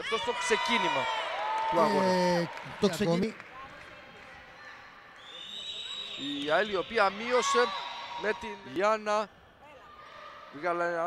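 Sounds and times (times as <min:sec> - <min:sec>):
faint sports hall noise: 0:00.0 - 0:11.0.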